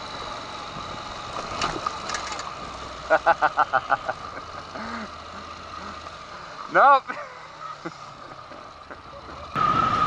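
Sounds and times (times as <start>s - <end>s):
motorcycle engine idling: 0.0s - 9.7s.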